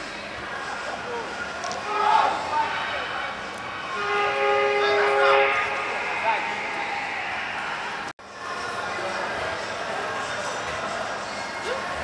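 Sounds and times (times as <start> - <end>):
two-tone vehicle horn: 3.8 - 7.2.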